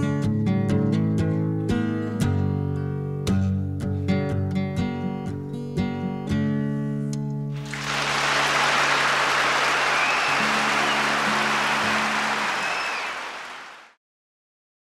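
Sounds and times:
audience applauding: 7.6s - 14.0s
whistles from audience: 7.6s - 14.0s.

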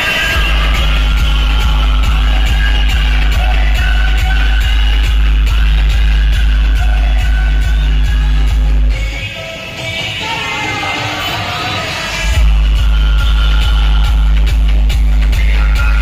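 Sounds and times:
loud music with deep bass: 0.0s - 16.0s.

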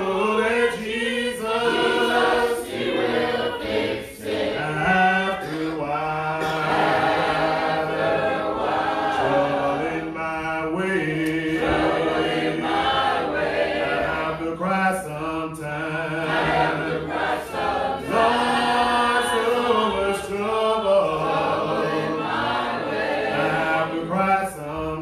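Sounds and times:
man singing into a microphone: 0.0s - 2.1s, 4.6s - 6.7s, 9.2s - 11.8s, 14.1s - 16.2s, 18.1s - 21.3s, 23.4s - 25.0s
congregation singing a hymn: 0.0s - 25.0s.

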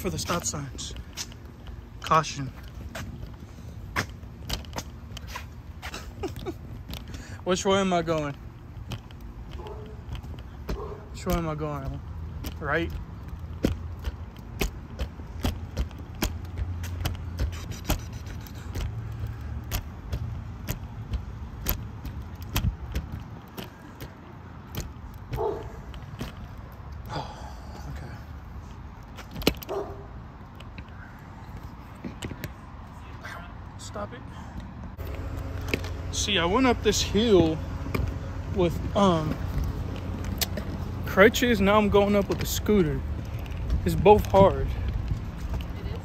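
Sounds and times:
scooter wheels rumbling on concrete: 0.0s - 46.0s
sharp clicks and rattles: 6.0s - 27.1s.

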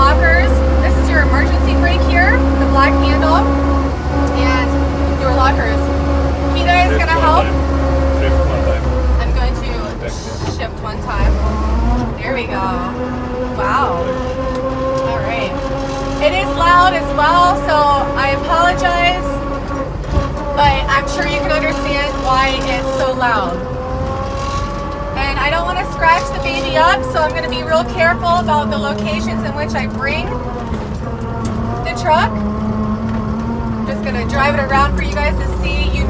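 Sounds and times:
people talking: 0.0s - 3.6s, 4.2s - 11.4s, 12.2s - 14.4s, 15.0s - 15.6s, 16.2s - 19.4s, 20.6s - 23.7s, 25.2s - 30.4s, 31.8s - 32.4s, 33.9s - 36.0s
engine drone: 0.0s - 36.0s.

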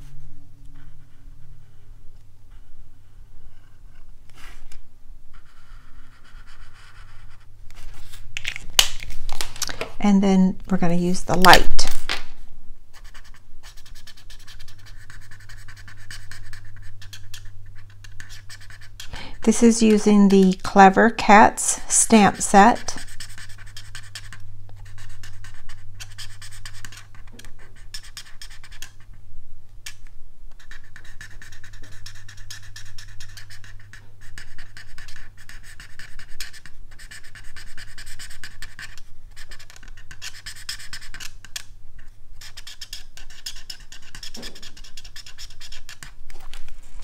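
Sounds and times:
marker scratching on cardstock: 5.3s - 8.2s, 12.9s - 29.1s, 30.5s - 46.2s.

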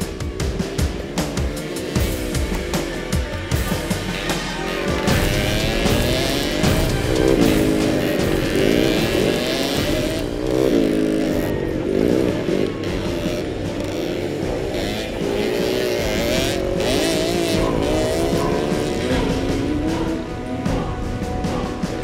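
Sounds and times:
motorcycle engines revving: 0.0s - 22.0s
music: 0.0s - 22.0s.

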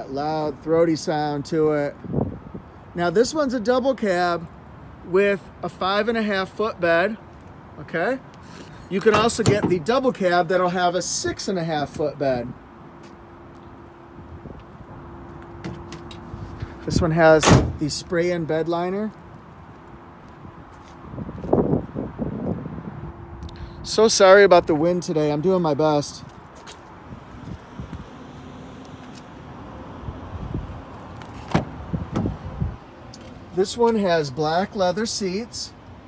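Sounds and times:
wind rumbling on microphone: 2.0s - 2.7s, 19.5s - 24.0s, 26.4s - 28.2s, 29.7s - 32.9s.

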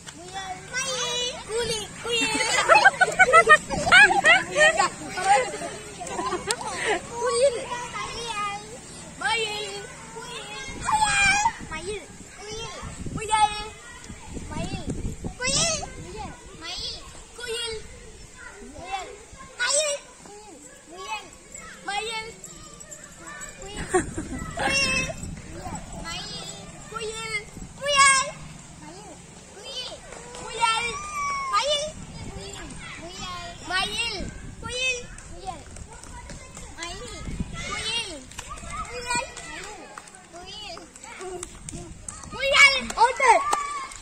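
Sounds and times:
children shouting and chattering: 0.0s - 44.0s.

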